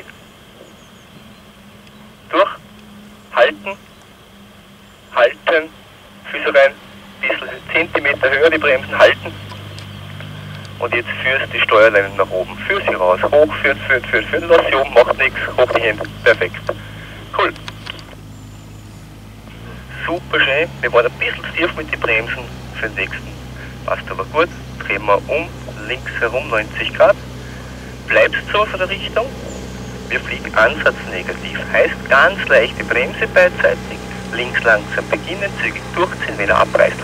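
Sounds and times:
radio hiss: 0.0s - 0.8s, 2.2s - 18.3s, 19.4s - 37.0s
low hum: 0.0s - 37.0s
person speaking over radio: 2.3s - 2.6s, 3.4s - 3.8s, 5.2s - 5.7s, 6.3s - 9.4s, 10.7s - 18.2s, 19.9s - 27.2s, 28.0s - 29.3s, 30.1s - 37.0s.

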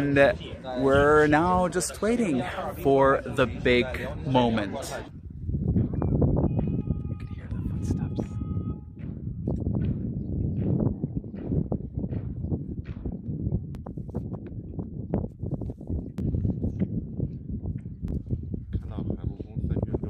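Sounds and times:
murmur of crowd: 0.0s - 5.2s.

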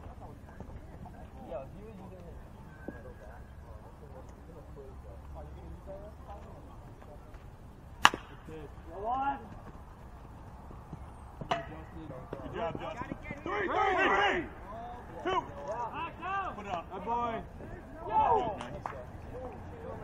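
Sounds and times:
metal bat hitting ball: 8.0s - 8.5s, 11.4s - 11.9s
people shouting across field: 13.2s - 16.7s.

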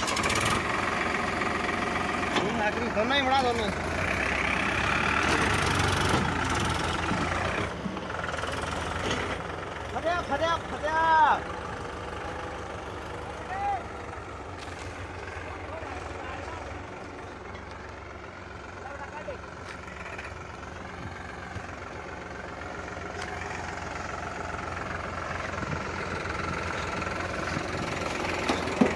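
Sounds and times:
tractor diesel engines running: 0.0s - 28.9s.

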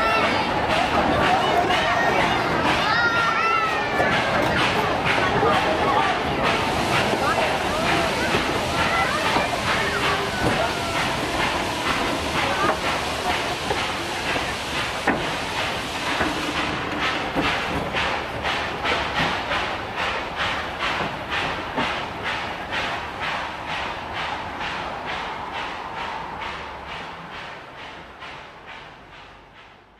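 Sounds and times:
steam hiss: 0.0s - 29.9s
steam locomotive chuffing: 0.0s - 29.9s
train carriages rolling over rails: 0.0s - 29.9s.

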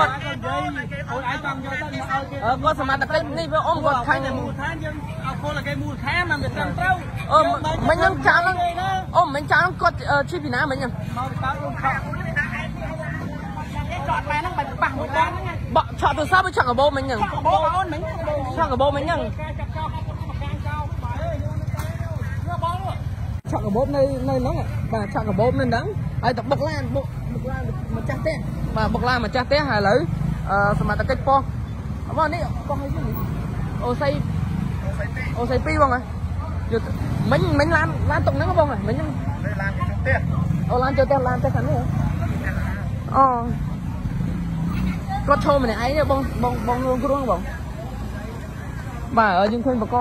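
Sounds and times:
motorbike and car engines: 0.0s - 50.0s
people talking: 0.0s - 50.0s.

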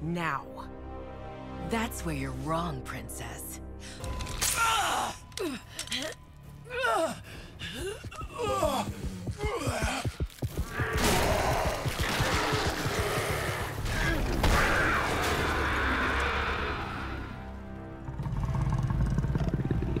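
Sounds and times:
film soundtrack music: 0.0s - 20.0s.

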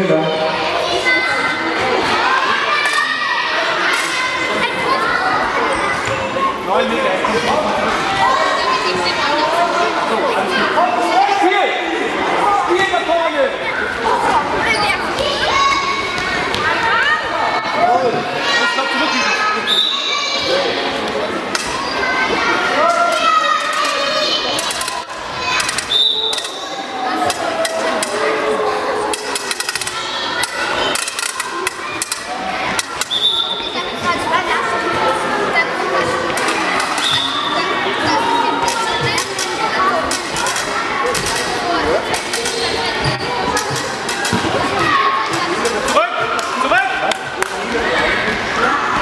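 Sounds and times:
children shouting and calling: 0.0s - 49.0s.

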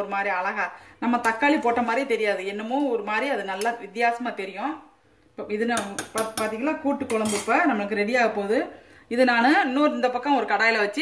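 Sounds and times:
spoon scraping metal pot: 5.8s - 7.7s.

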